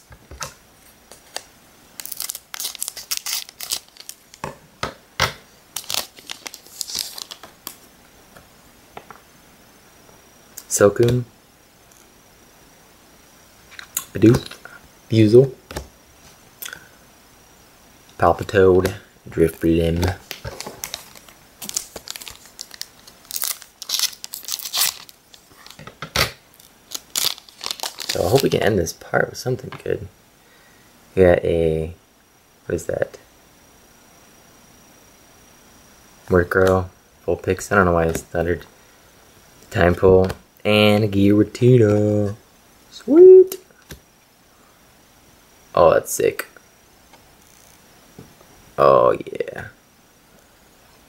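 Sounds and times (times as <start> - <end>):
plastic wrapper crinkling and tearing: 1.1 - 4.5, 5.7 - 7.9, 19.5 - 25.8, 26.5 - 28.6.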